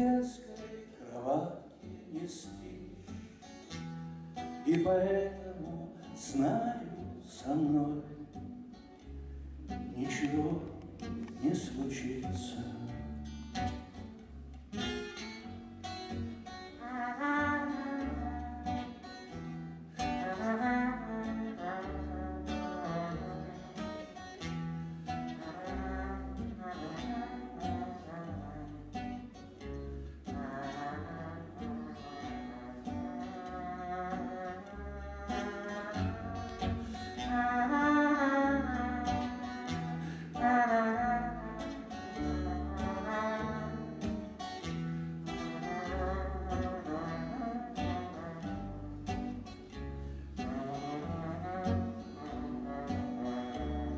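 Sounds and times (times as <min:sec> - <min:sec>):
man singing with vibrato: 0:00.0 - 0:03.4, 0:04.6 - 0:08.5, 0:09.7 - 0:13.2, 0:16.5 - 0:24.3, 0:25.0 - 0:29.3, 0:30.2 - 0:49.2, 0:50.4 - 0:53.9
acoustic guitar: 0:00.0 - 0:53.9.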